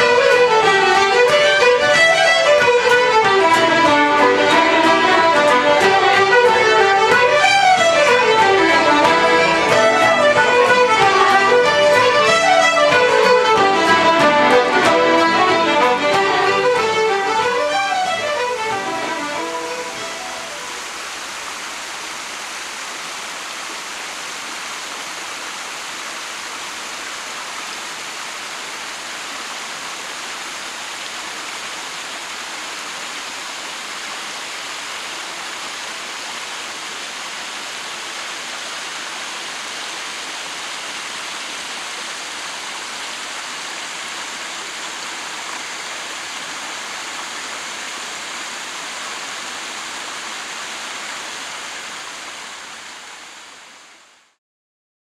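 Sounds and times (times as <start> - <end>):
stream splashing over rocks: 0.0 - 54.1.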